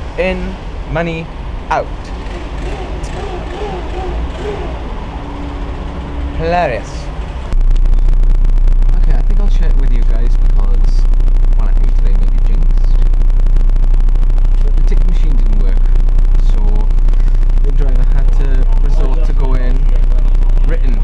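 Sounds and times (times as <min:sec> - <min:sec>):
bus engine and road rumble: 0:00.0 - 0:08.1, 0:16.6 - 0:21.0
passengers talking faintly: 0:14.6 - 0:21.0.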